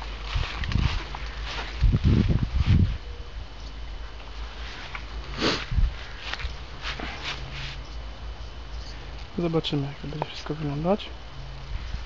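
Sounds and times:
rustling: 0.0s - 3.0s, 4.2s - 8.0s
steady low rumble: 0.0s - 12.0s
footsteps: 4.5s - 7.8s.

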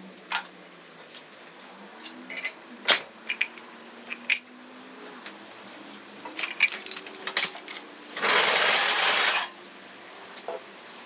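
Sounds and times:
metal chain clinking and rattling: 3.2s - 4.6s, 6.2s - 9.7s.

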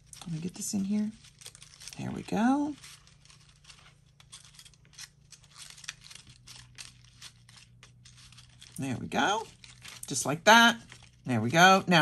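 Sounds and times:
cardstock rustling and scraping: 0.0s - 12.0s
low steady hum: 0.0s - 12.0s.

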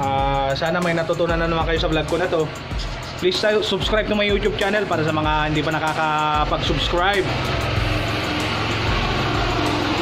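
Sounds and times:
vehicle engine running: 1.3s - 10.0s
low hum: 7.2s - 10.0s.

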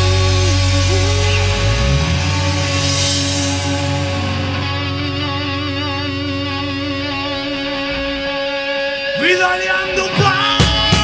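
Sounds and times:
electric guitars sustained notes: 0.0s - 11.0s
rock band music: 0.0s - 11.0s.

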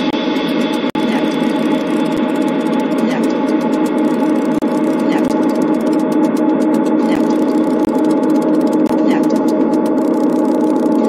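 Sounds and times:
dense electronic drone: 0.0s - 11.0s
synthesized hi-hat ticks: 0.0s - 11.0s.

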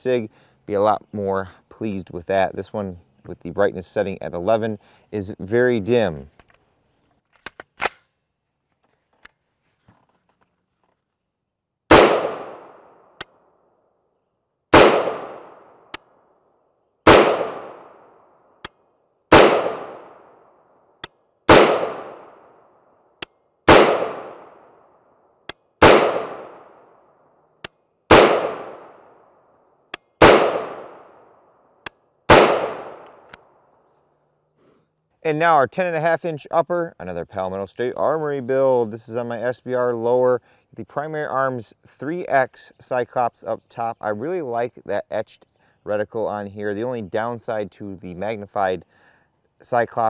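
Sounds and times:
gunshots echoing: 11.9s - 13.2s, 14.7s - 15.8s, 17.0s - 18.2s, 19.3s - 20.3s, 21.5s - 22.5s, 23.7s - 24.6s, 25.8s - 26.9s, 28.1s - 29.2s, 30.2s - 31.3s, 32.3s - 33.2s.

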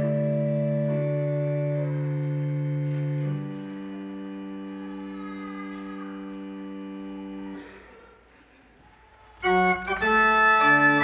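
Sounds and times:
pipe organ chord: 0.0s - 7.9s, 9.4s - 11.0s.

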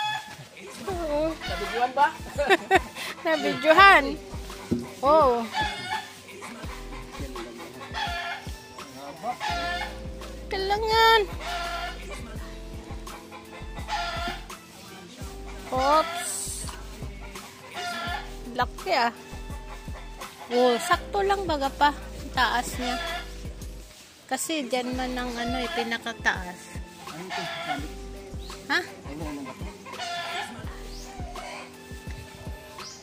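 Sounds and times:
chicken clucking: 0.0s - 3.8s, 4.4s - 8.5s, 13.1s - 16.3s, 17.0s - 18.4s, 27.2s - 27.9s, 29.1s - 32.2s
music with steady beat: 0.0s - 33.0s
chicken squawk: 1.4s - 1.9s, 3.0s - 3.8s, 11.4s - 12.0s, 13.2s - 14.5s, 15.9s - 16.3s, 17.3s - 18.4s, 22.8s - 23.3s, 27.3s - 27.9s, 29.8s - 31.8s.

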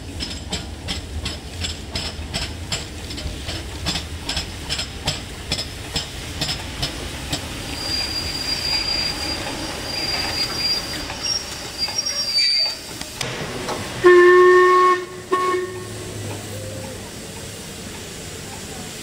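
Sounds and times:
steam locomotive passing: 0.0s - 19.0s
high thin squeal: 7.8s - 12.8s.

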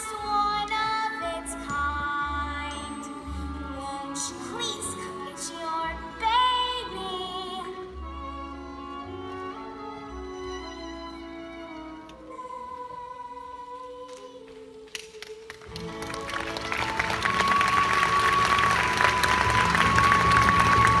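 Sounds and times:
pit orchestra playing: 0.1s - 12.8s, 15.7s - 21.0s
audience applause: 15.5s - 21.0s.

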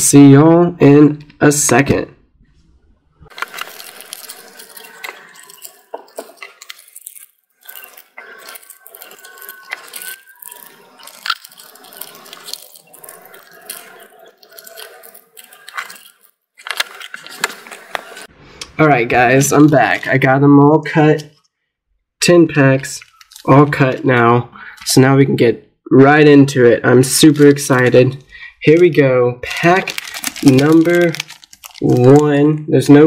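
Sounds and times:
foil wrappers crinkling: 3.3s - 18.3s, 22.8s - 24.1s, 27.1s - 28.0s, 29.5s - 32.3s.

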